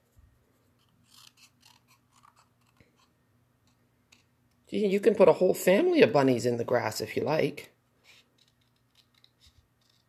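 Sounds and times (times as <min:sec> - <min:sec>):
scissors snipping paper: 0:00.8 - 0:03.1, 0:08.1 - 0:10.0.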